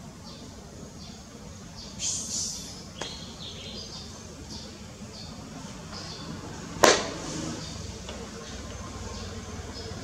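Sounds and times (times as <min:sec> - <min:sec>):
faint birds chirping: 0:00.0 - 0:10.0
sharp crack: 0:06.8 - 0:07.2.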